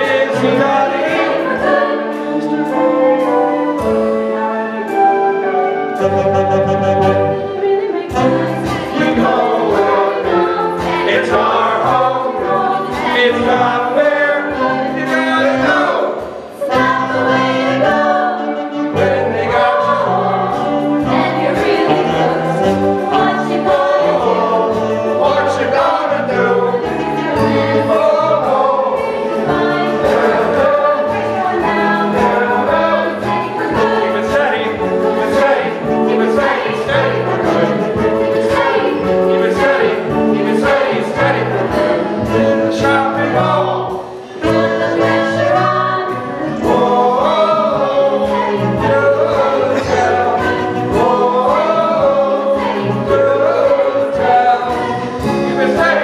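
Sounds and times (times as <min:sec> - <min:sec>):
cast singing ensemble number: 0:00.0 - 0:56.0
instrumental accompaniment: 0:00.0 - 0:56.0.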